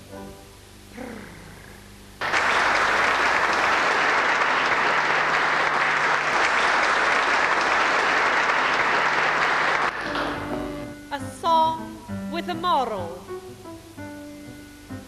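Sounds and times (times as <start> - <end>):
audience applauding: 2.2 - 10.9.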